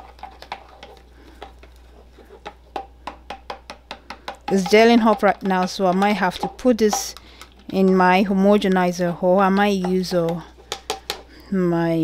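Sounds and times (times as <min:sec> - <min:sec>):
spoon stirring gel in plastic cup: 0:00.0 - 0:11.2.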